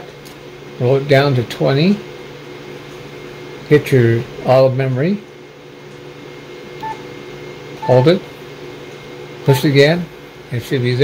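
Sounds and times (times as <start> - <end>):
steady hum: 6.8 - 8.7, 9.3 - 10.4
short electronic beep: 7.8 - 8.2, 9.5 - 9.7.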